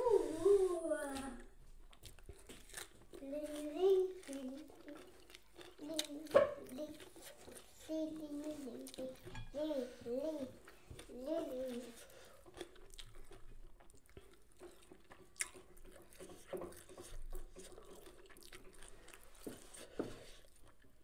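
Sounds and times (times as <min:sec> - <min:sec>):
person humming: 0:00.0 - 0:01.4
person chewing: 0:01.7 - 0:09.3, 0:10.6 - 0:21.0.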